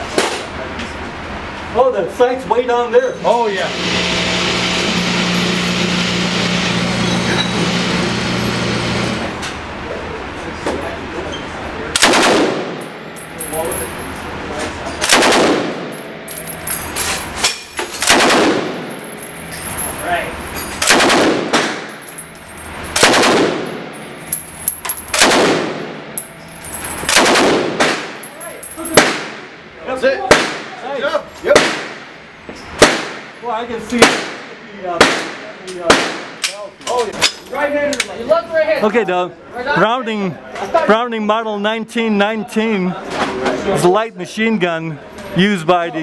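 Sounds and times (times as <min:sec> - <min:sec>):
steady low hum: 0:00.0 - 0:36.8
machine gun firing bursts: 0:12.0 - 0:12.8, 0:15.0 - 0:15.9, 0:18.0 - 0:18.9, 0:20.8 - 0:21.9, 0:23.0 - 0:23.8, 0:25.1 - 0:26.0, 0:27.1 - 0:28.2.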